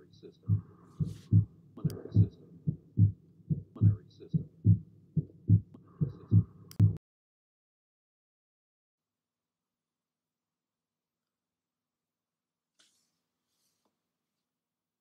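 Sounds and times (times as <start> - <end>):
heart murmur hiss: 0.0 - 7.0
heartbeat through stethoscope: 0.4 - 7.0.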